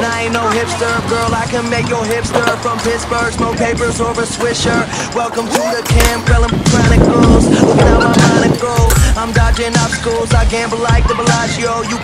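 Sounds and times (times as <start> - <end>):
hip hop song with beat: 0.0 - 12.0.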